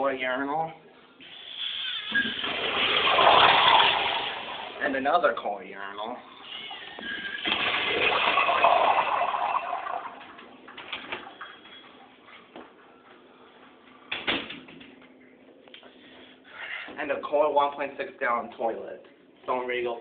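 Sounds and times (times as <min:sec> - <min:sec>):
urinal flushing water rush: 0:01.2 - 0:04.8, 0:06.3 - 0:10.7.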